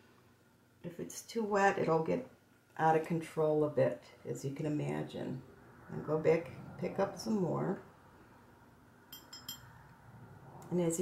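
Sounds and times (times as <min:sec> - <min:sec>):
paintbrush clinking on palette: 0:09.1 - 0:09.7.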